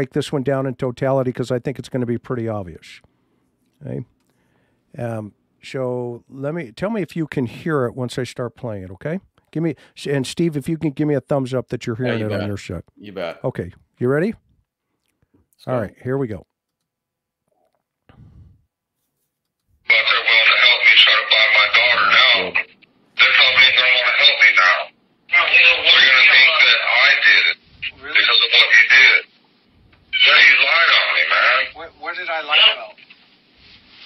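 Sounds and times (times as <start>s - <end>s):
man talking on phone line: 10.1s - 14.3s, 19.9s - 29.3s, 30.1s - 33.0s.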